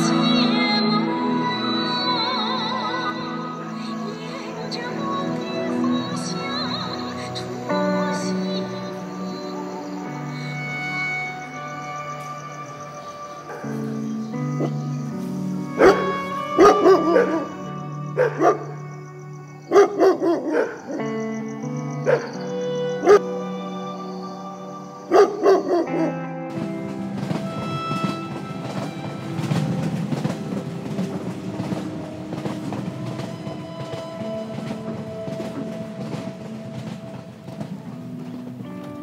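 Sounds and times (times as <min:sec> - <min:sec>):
slow background music: 0:00.0 - 0:39.0
dog barking: 0:15.8 - 0:17.5, 0:18.2 - 0:18.7, 0:19.7 - 0:21.1, 0:22.1 - 0:22.4, 0:23.0 - 0:23.2, 0:25.1 - 0:26.2.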